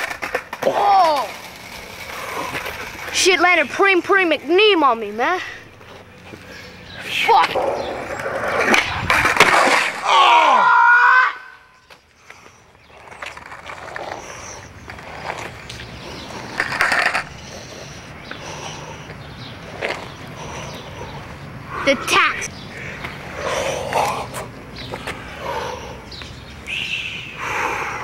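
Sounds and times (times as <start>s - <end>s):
skateboard clattering on asphalt: 0.0s - 6.5s, 7.4s - 10.1s, 12.8s - 17.6s
board and body scuffing ground: 8.6s - 10.0s.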